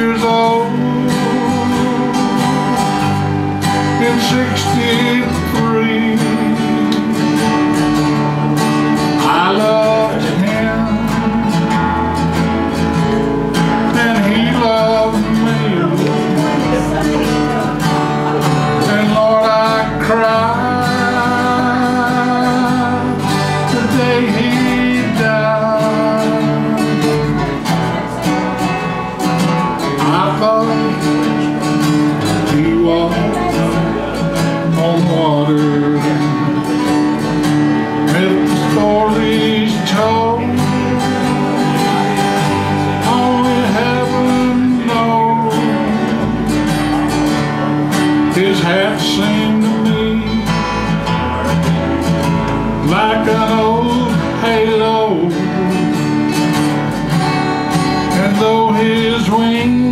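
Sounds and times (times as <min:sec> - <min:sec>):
acoustic country instrumental: 0:00.0 - 0:59.9.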